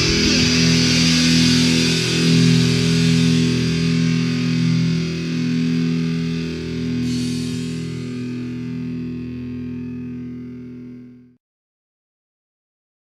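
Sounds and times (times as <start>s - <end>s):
distorted electric guitar chords: 0.0s - 11.4s.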